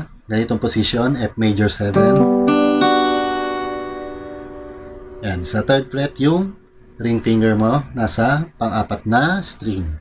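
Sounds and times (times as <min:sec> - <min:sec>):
acoustic guitar chord ringing: 0:02.0 - 0:07.5.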